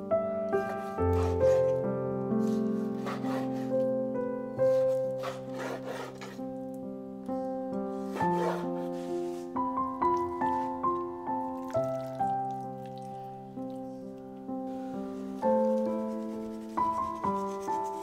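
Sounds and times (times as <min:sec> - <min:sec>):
background music with held notes: 0:00.0 - 0:18.0
knife slicing on wooden board: 0:04.7 - 0:06.4, 0:08.1 - 0:09.4.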